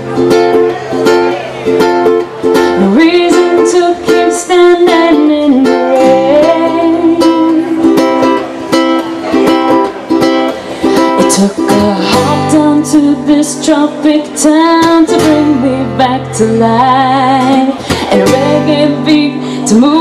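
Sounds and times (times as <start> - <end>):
acoustic guitar and ukulele strumming: 0.0 - 20.0.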